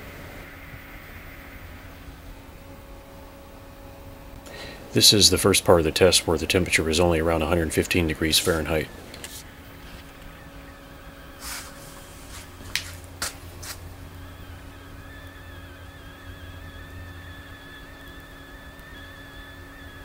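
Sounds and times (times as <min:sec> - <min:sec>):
faint wavering high tone: 0:00.0 - 0:09.0, 0:13.9 - 0:20.0
low electrical hum: 0:00.0 - 0:20.0.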